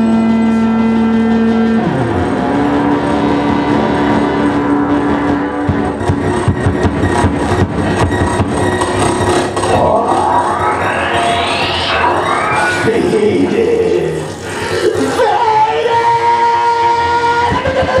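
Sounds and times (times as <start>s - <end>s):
electronic noise music: 1.6s - 18.0s
low tone sliding down: 9.2s - 14.8s
rising sweep: 9.4s - 15.2s.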